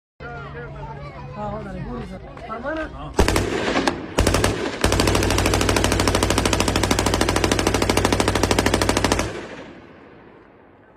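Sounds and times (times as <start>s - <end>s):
machine gun firing bursts: 3.2s - 10.0s
gunfire echo: 3.2s - 10.9s.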